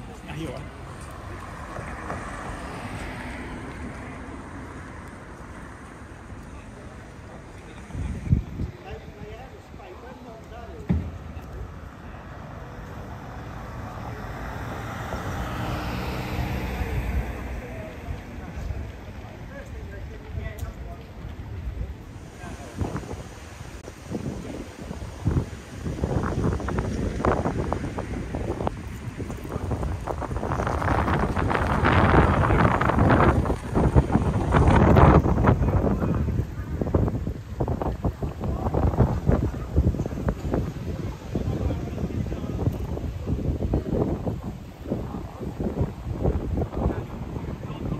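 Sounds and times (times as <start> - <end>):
road noise: 0.0 - 47.9
vehicle engine rumble: 0.0 - 47.9
wind buffeting microphone: 0.0 - 47.9.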